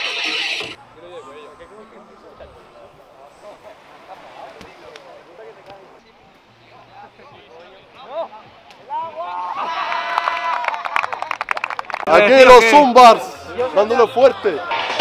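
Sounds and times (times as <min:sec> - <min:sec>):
group of people talking: 0:00.0 - 0:15.0.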